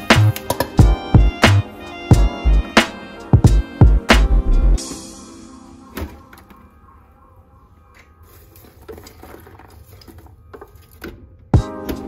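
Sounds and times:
music with strong drum beat: 0:00.0 - 0:05.5, 0:11.6 - 0:12.0.

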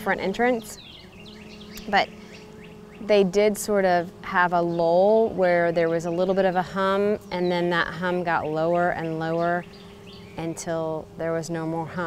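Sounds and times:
beehive humming: 0:00.0 - 0:12.0
faint birds chirping: 0:00.0 - 0:12.0.

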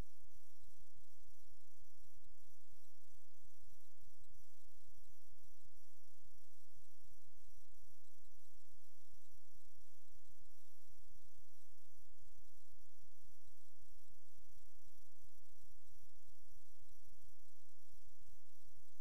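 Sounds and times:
faint high-pitched whines: 0:00.0 - 0:19.0.

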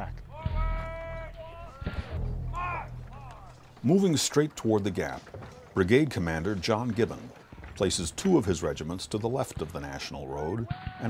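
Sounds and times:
distant men calling out: 0:00.0 - 0:09.4.

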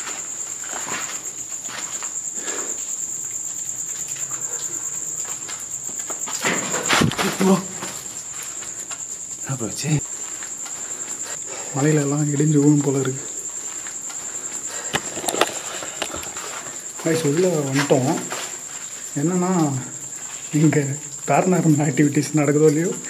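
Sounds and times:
crickets chirring: 0:00.0 - 0:23.0.

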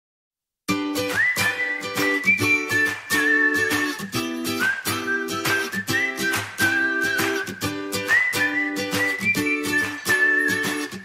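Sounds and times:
whistled melody: 0:00.9 - 0:11.0.

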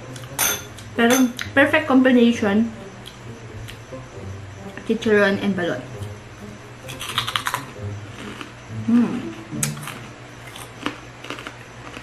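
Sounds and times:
crunching pork rind: 0:06.8 - 0:12.0.

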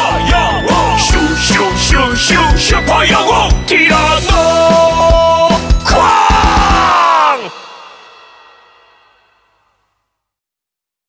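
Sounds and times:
echo of voice: 0:00.0 - 0:07.7.

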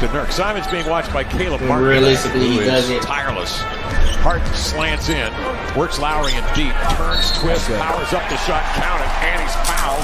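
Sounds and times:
game broadcast sound: 0:00.0 - 0:10.0
man talking: 0:00.0 - 0:10.0.

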